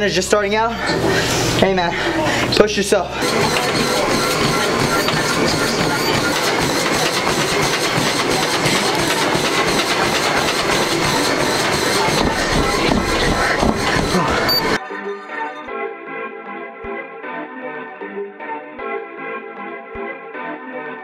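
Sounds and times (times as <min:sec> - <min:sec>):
treadmill belt and motor: 0:00.1 - 0:14.8
footfalls on treadmill deck: 0:03.2 - 0:14.8.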